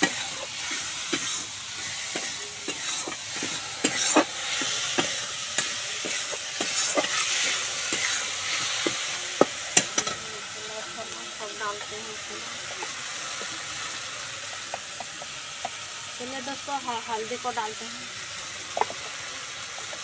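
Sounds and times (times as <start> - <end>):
metal spatula scraping a pan: 0.0 - 9.0
fish sizzling in oil: 0.0 - 20.0.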